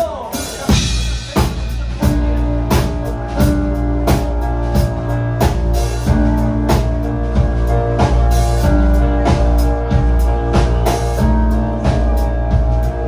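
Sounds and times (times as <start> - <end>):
rock band playing: 0.0 - 13.0
drum hits: 0.6 - 13.0.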